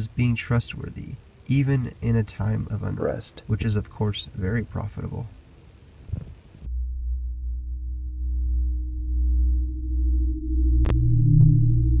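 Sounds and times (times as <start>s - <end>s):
dark ambient electronic drone: 0.0s - 12.0s.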